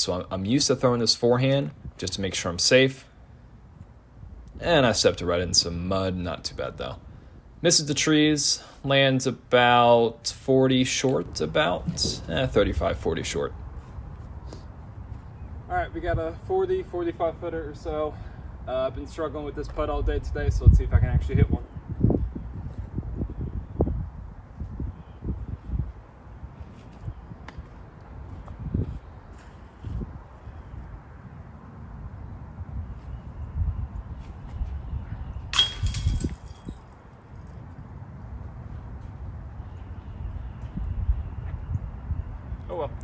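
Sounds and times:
wind rumble on microphone: 11.2 - 16.6, 19.6 - 43.0
disc striking metal basket: 35.5 - 36.8.

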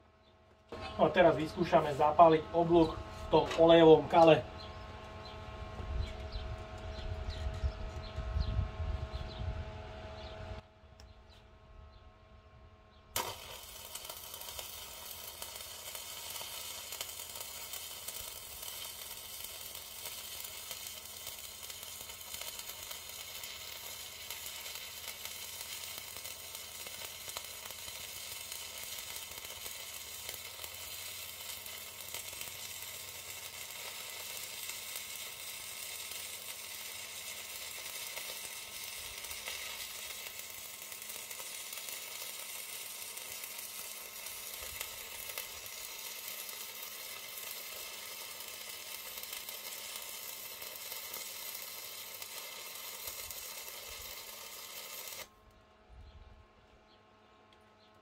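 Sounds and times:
welding arc crackling sizzle: 0.6 - 8.2, 13.1 - 55.4.

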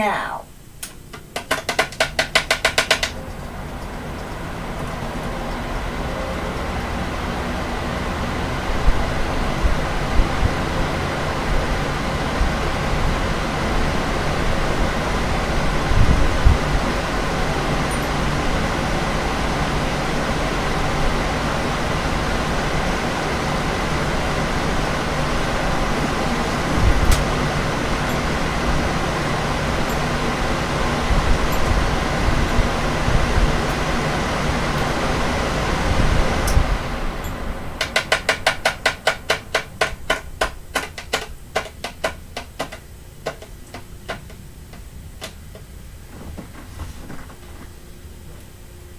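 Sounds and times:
fans blowing air: 0.0 - 48.9.

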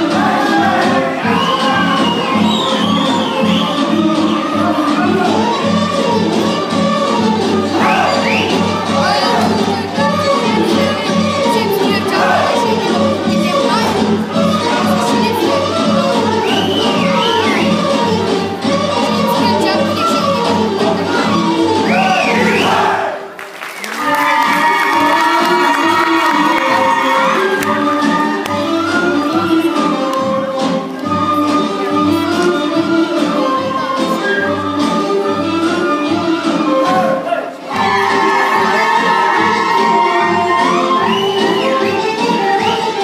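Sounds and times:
folk dance music: 0.0 - 43.0
high shouts: 23.9 - 27.6, 36.9 - 41.8
dancers whooping shouts: 37.2 - 41.5.

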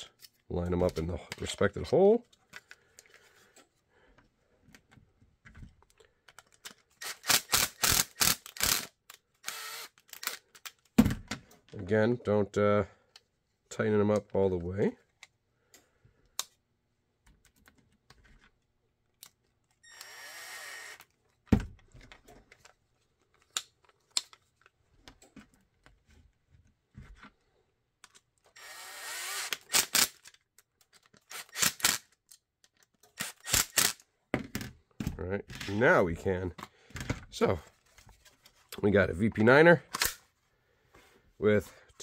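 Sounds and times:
cordless power driver running: 9.4 - 10.4, 28.6 - 30.0.

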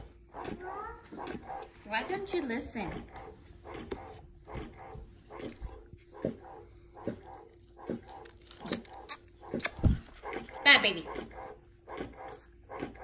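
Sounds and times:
breast pump motor hum: 0.0 - 13.0
rhythmic suction sound: 0.0 - 13.0.

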